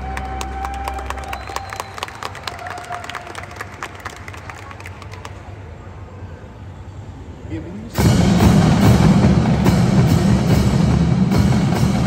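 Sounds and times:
audience applauding and cheering: 0.0s - 5.7s.

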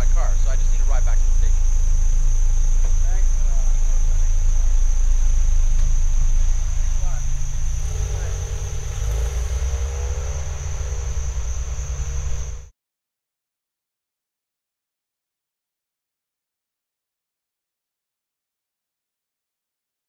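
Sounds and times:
constant low rumble: 0.0s - 12.7s
steady high whine: 0.1s - 12.7s
car engine accelerating: 1.4s - 12.7s.

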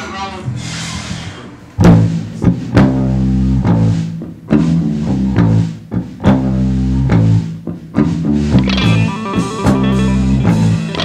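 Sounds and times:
electric bass guitar riff: 1.8s - 11.0s.

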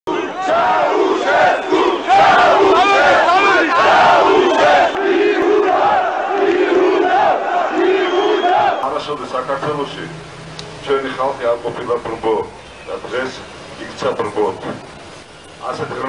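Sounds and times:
crowd shouting: 0.1s - 8.9s.

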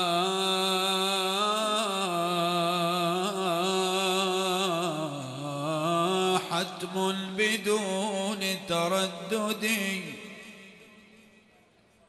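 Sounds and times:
man chanting devotional verse: 0.0s - 11.1s.

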